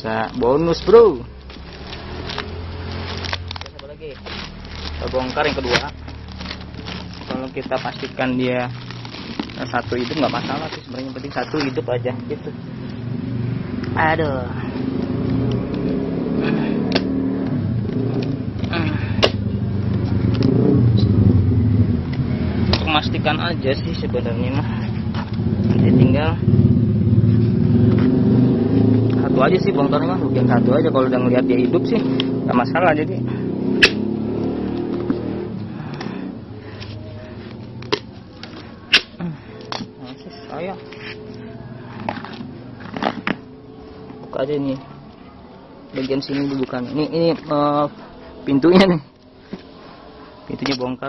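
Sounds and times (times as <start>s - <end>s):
vehicle engine running: 0.0s - 48.5s.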